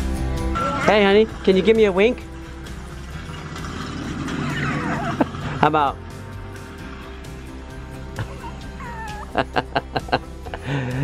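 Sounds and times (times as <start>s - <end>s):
soft background music: 0.0s - 11.0s
toddler squealing: 8.2s - 9.4s
toddler laughing: 8.2s - 10.2s.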